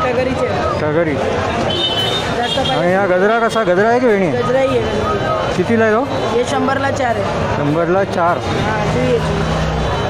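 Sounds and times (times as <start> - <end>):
vendors and shoppers talking: 0.0 - 10.0.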